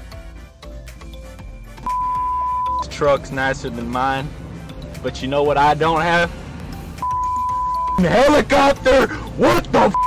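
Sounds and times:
background music: 0:00.0 - 0:10.0
electronic censor beep: 0:01.9 - 0:02.9, 0:07.0 - 0:08.0.

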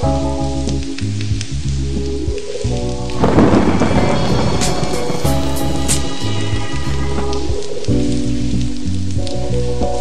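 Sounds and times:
rain: 0:00.0 - 0:10.0
rumbling thunder: 0:03.1 - 0:08.7.

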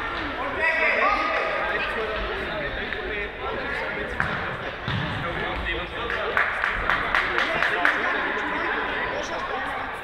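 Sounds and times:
voices echoing in a hall: 0:00.0 - 0:10.0
football kicked on hall floor: 0:04.2 - 0:05.2.

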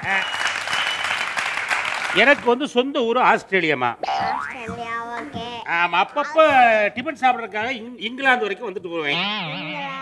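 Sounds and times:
cartoon boing glide: 0:04.0 - 0:04.7.

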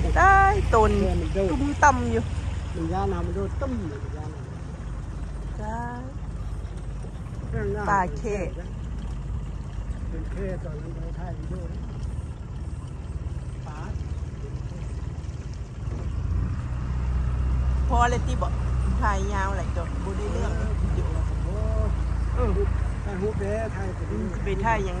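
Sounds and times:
outboard motor running: 0:00.0 - 0:25.0.

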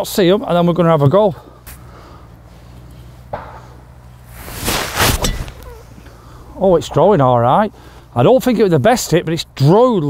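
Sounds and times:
club striking golf ball: 0:03.3 - 0:03.8, 0:04.5 - 0:05.8
golf club swish: 0:04.3 - 0:05.8.

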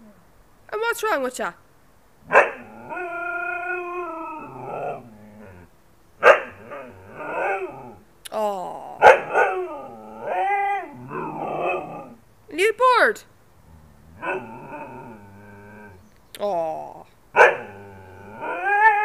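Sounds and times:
dog yelping: 0:02.3 - 0:05.0, 0:06.2 - 0:07.9, 0:09.0 - 0:12.2, 0:17.4 - 0:17.7
dog howling: 0:02.3 - 0:05.7, 0:06.4 - 0:08.0, 0:09.0 - 0:12.2, 0:14.1 - 0:16.0, 0:17.4 - 0:19.0.

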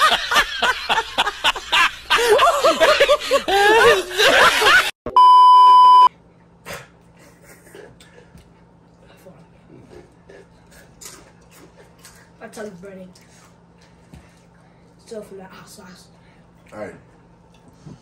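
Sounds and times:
steady low hum: 0:00.0 - 0:18.0
electronic censor bleep: 0:05.1 - 0:06.1.

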